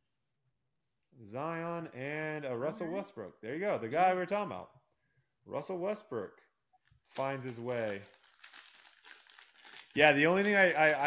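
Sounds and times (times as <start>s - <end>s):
foil wrapper crinkling: 7.2s - 11.0s.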